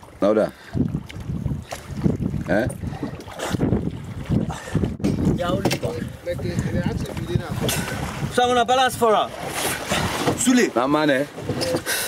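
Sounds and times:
wind buffeting microphone: 0:00.0 - 0:11.9
choppy water around boat: 0:00.0 - 0:12.0.

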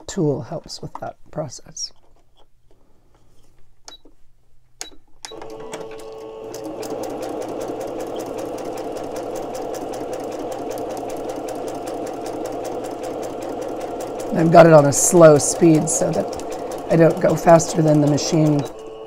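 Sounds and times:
sewing machine stitching: 0:05.3 - 0:19.0.

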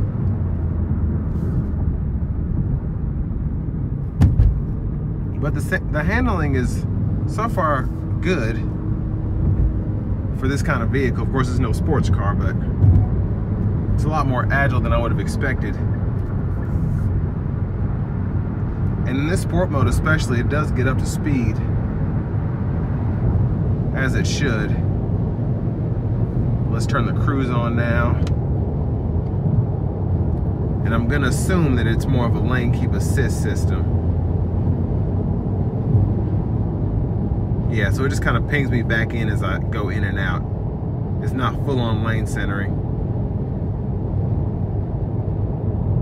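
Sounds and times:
car engine running: 0:00.0 - 0:46.0
tyre road noise: 0:00.0 - 0:46.0.

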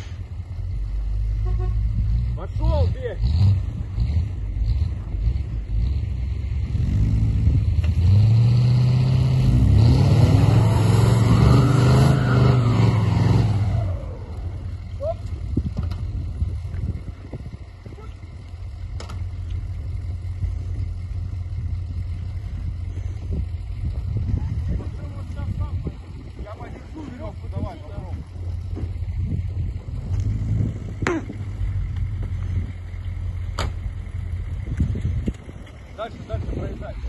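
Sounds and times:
vehicle engine revving hard: 0:02.0 - 0:14.3.

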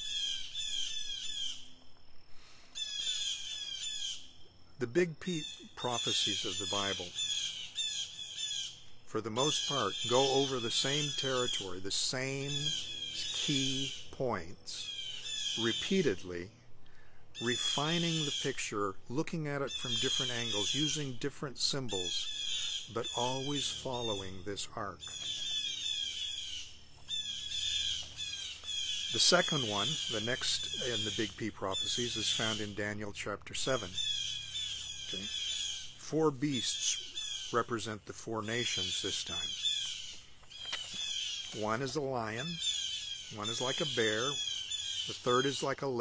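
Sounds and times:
blue jays squawking: 0:04.9 - 0:08.7, 0:21.7 - 0:46.0.

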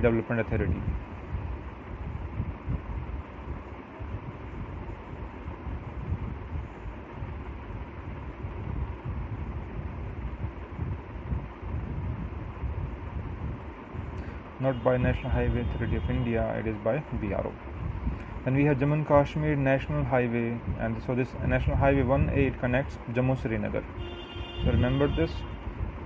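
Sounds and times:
background rumble: 0:00.0 - 0:24.0
faint steady hum: 0:00.0 - 0:26.0.

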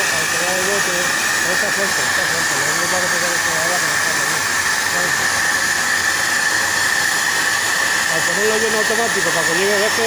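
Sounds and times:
loud hiss with high whine: 0:00.0 - 0:10.0
plasma torch cutting metal: 0:00.0 - 0:10.0.

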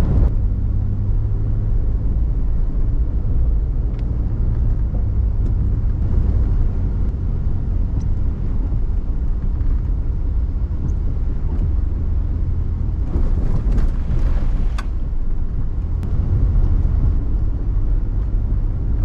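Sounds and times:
vehicle rumbling on dirt road: 0:00.0 - 0:19.0.

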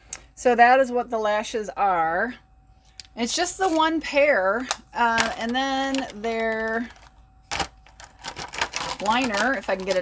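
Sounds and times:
packaging clicking and rattling: 0:04.7 - 0:10.0.

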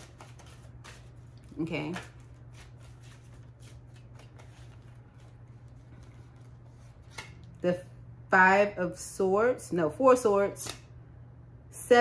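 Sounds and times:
cards being shuffled: 0:00.0 - 0:07.6.

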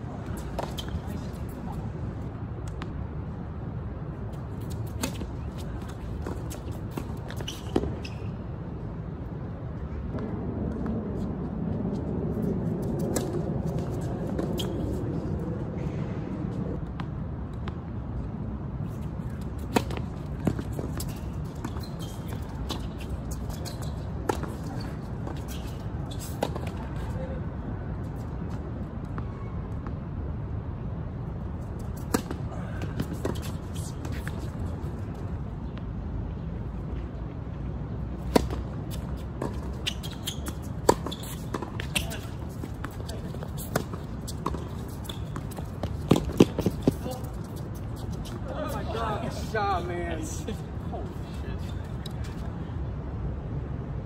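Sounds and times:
tennis balls struck by racquets: 0:38.2 - 0:47.6
balls bouncing on hard court: 0:38.2 - 0:48.4.

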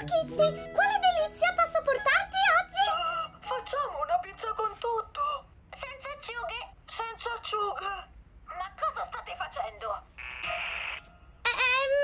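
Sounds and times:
high-pitched cartoon voice babbling: 0:11.5 - 0:12.0.

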